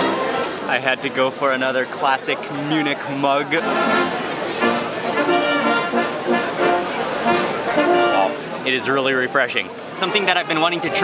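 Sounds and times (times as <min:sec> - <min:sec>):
brass band playing: 0:03.6 - 0:08.6.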